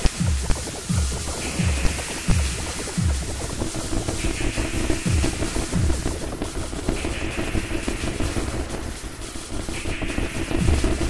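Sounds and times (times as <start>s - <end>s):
noisy electronic music: 0.0s - 11.0s.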